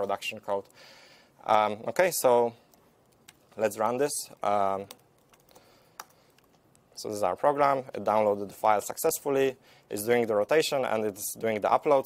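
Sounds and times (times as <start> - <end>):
computer keyboard typing: 4.8 - 6.6.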